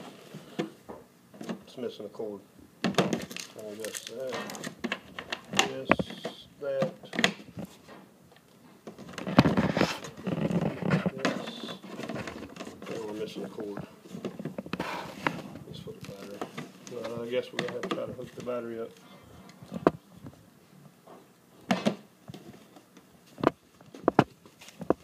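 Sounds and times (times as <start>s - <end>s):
plastic case clicks and knocks: 17.5s - 18.1s.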